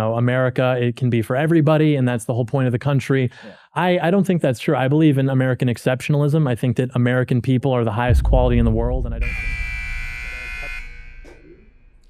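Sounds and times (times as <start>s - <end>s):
electronic buzzer tone: 9.2s - 12.0s.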